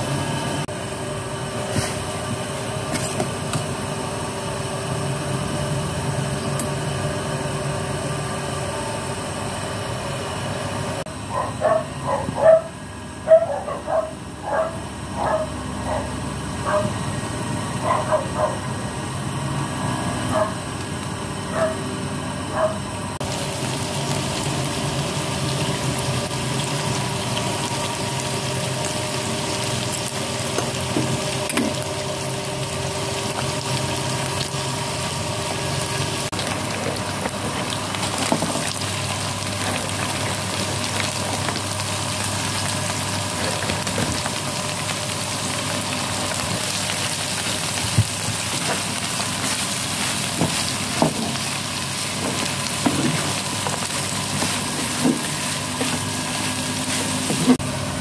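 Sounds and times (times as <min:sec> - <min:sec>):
water boiling in a pot: 0:23.1 - 0:58.0.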